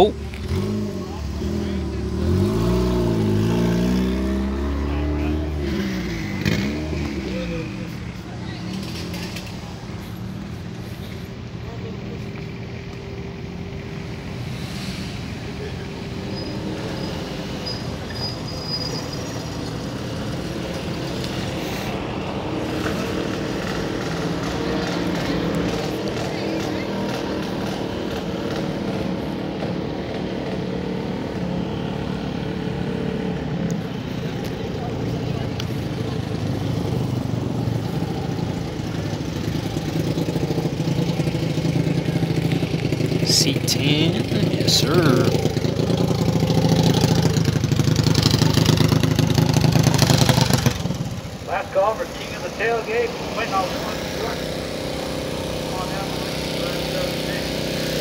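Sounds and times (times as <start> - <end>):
voices: 0.0 - 14.0, 15.3 - 30.1, 33.7 - 50.0, 51.0 - 58.0
engines running: 0.0 - 58.0
car engine revving past: 0.3 - 7.9.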